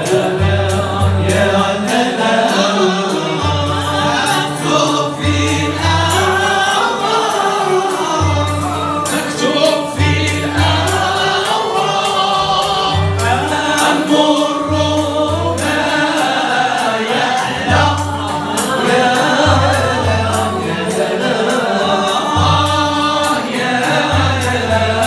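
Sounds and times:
men singing together: 0:00.0 - 0:25.0
plucked oud: 0:00.0 - 0:25.0
qanun: 0:00.0 - 0:25.0.

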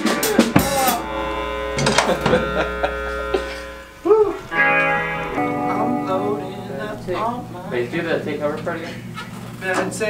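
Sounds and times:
electric guitar with bent notes: 0:00.0 - 0:09.4.

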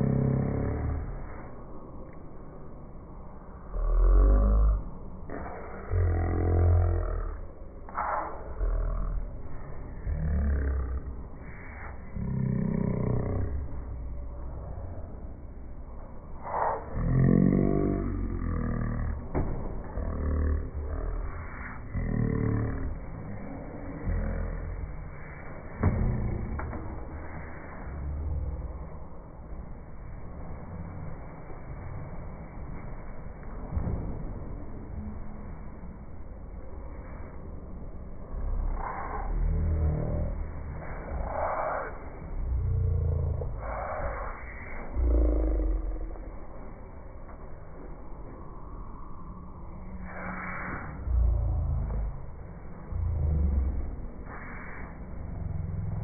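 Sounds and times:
person making low roaring sounds: 0:00.0 - 0:01.6, 0:03.6 - 0:29.2, 0:36.6 - 0:46.8, 0:49.7 - 0:56.0
deep rumble: 0:00.0 - 0:56.0.

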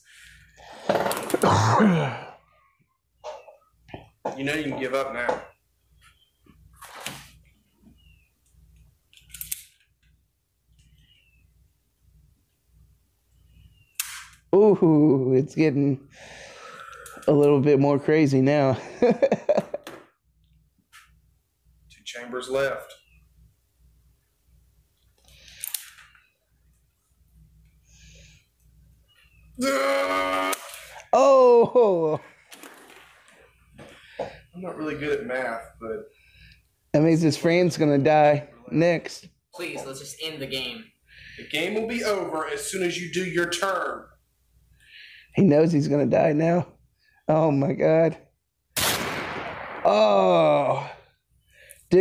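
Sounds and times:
man exclaiming: 0:29.6 - 0:32.3, 0:49.9 - 0:51.0.

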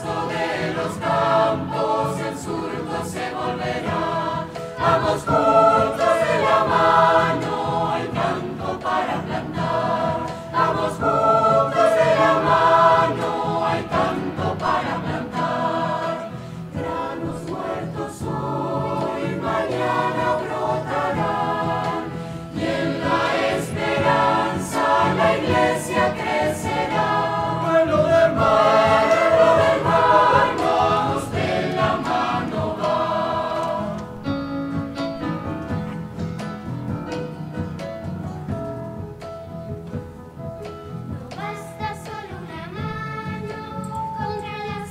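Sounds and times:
mixed choir singing: 0:00.0 - 0:36.3.

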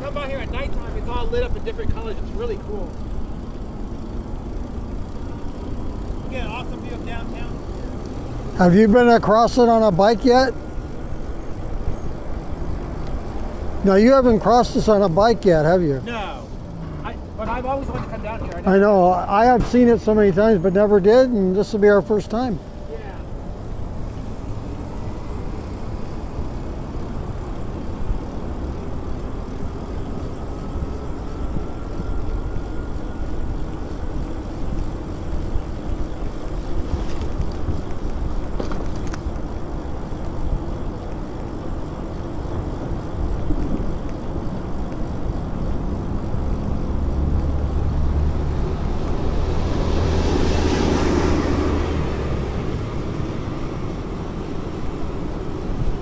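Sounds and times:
bike tyres on paved path: 0:00.0 - 0:56.0
passing vehicle noise: 0:00.0 - 0:56.0
wind rumbling on microphone: 0:30.3 - 0:56.0.

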